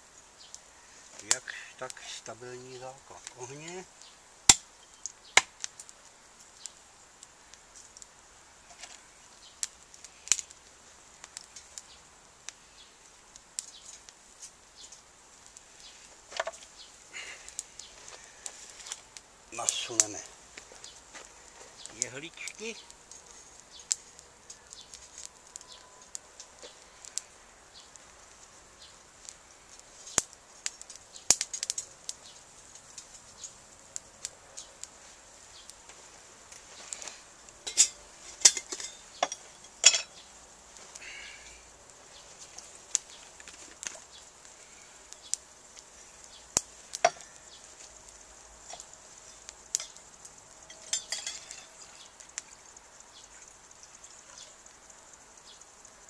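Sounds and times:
fire crackling and popping: 0.0 - 56.0
sticks clinking against metal: 37.6 - 40.2, 47.0 - 47.3, 50.7 - 51.8.

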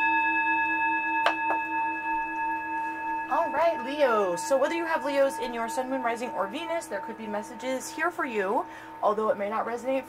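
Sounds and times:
singing bowl ringing: 0.0 - 10.0.

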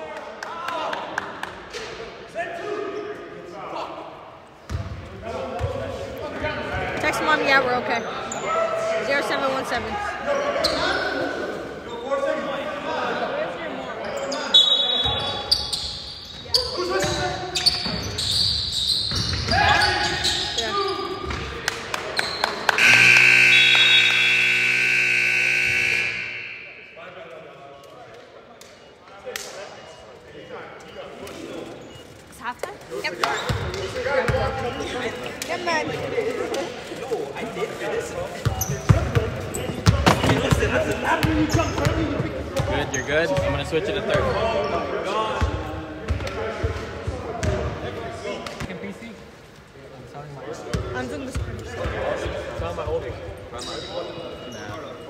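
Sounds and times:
voices in echoing hall: 0.0 - 55.0
sneakers squeaking on hardwood: 14.0 - 21.6, 33.2 - 35.0, 38.4 - 44.3
scoreboard buzzer: 22.8 - 27.0.

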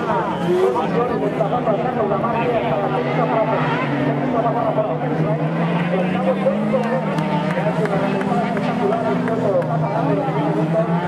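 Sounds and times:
buggy engines passing: 0.0 - 11.0.

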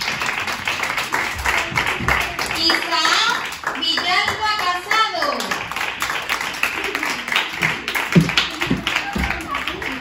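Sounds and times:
children clapping: 0.0 - 10.0
children's voices: 0.9 - 5.5, 6.4 - 10.0.

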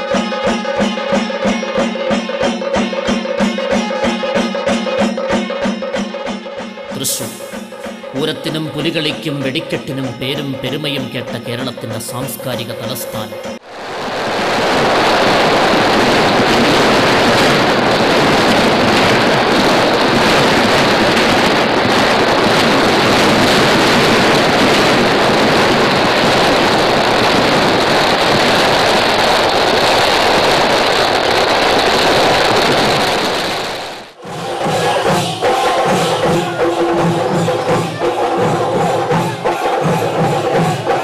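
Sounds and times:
drum and percussion music: 0.0 - 30.8, 32.2 - 41.0
firecracker explosions crackling: 7.0 - 40.8.

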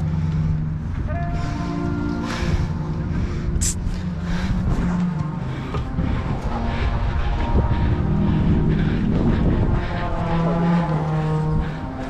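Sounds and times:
low rumble on microphone: 0.0 - 12.0
brass section playing held chords: 1.0 - 12.0.

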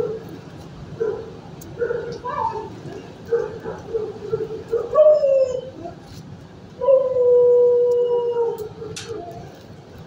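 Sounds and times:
dog howling: 3.8 - 6.0, 6.8 - 9.5.

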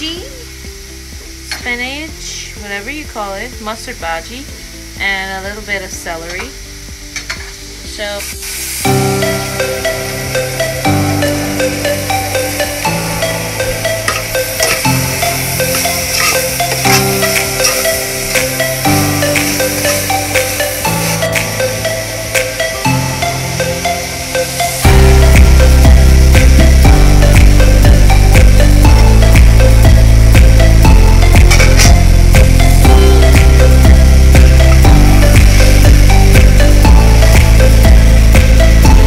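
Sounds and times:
background music with held chords: 0.0 - 39.0
heavy bass: 8.8 - 39.0
steady beat: 8.8 - 39.0.

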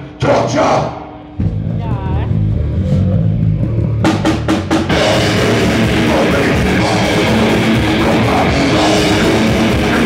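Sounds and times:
heavy guitar and bass ringing: 0.0 - 10.0
drum and cymbal hits: 1.4 - 10.0
metal band playing: 1.4 - 10.0.

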